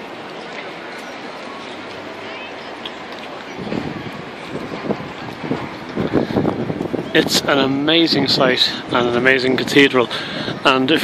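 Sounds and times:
outdoor background hiss: 0.0 - 11.0
wind buffeting microphone: 2.8 - 11.0.

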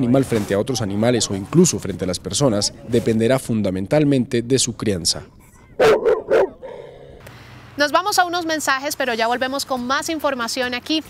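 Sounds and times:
dog barking: 5.6 - 7.0.

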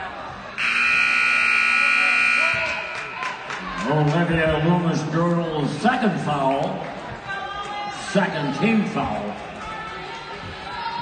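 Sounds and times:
crowd murmur: 0.0 - 11.0
scoreboard buzzer: 0.6 - 3.4.

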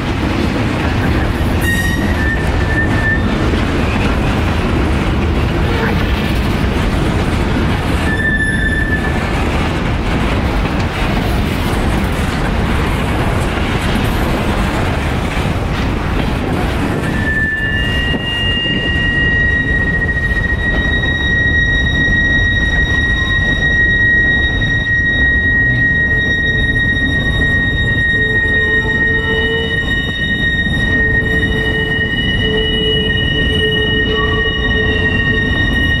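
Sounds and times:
train wheels rumbling on rail: 0.0 - 36.0
high wheel squeal: 1.0 - 4.8, 7.7 - 9.3, 16.9 - 36.0.

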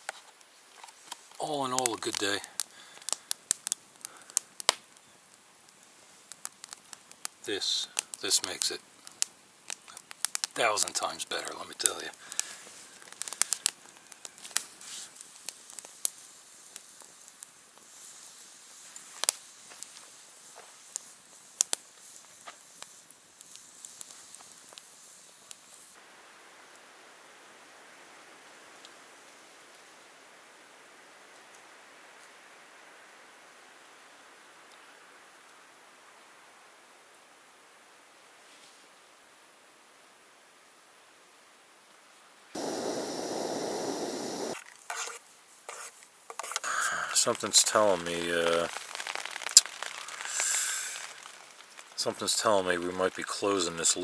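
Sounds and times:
campfire crackling and popping: 0.0 - 26.0, 42.5 - 54.0
rain falling: 1.2 - 4.8, 9.7 - 17.7, 42.6 - 44.6, 46.7 - 54.0
stove burner hissing: 42.6 - 44.6, 46.4 - 54.0.

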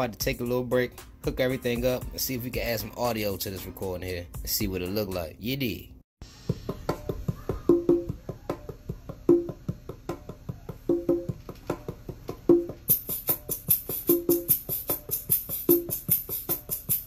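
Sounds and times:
hip-hop beat: 0.0 - 5.4, 6.4 - 17.0
hi-hat ticks: 12.9 - 17.0.

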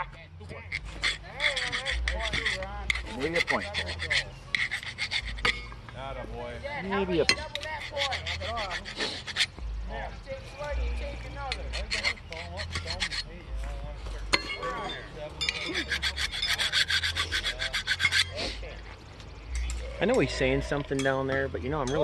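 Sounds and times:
rapid rasping scraping: 0.5 - 5.8, 6.9 - 9.6, 10.7 - 13.4, 14.3 - 18.7.

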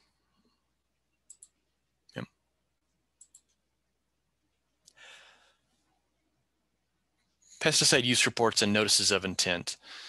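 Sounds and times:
small clicks: 1.3 - 1.6, 3.2 - 3.6.

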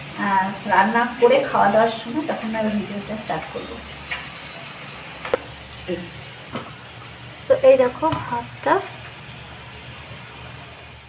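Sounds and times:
steady hum and hiss: 0.0 - 11.0.

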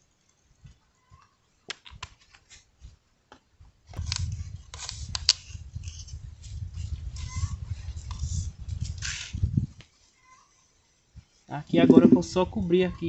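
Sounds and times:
paint stirring scraping: 11.7 - 12.3.

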